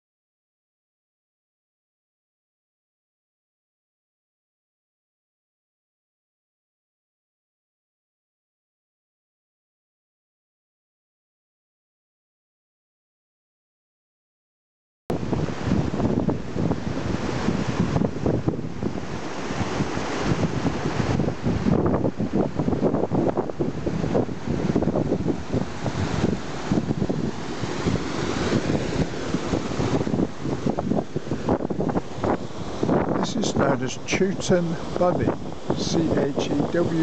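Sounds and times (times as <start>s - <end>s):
stream water rushing: 15.1s - 37.0s
wind buffeting microphone: 15.1s - 37.0s.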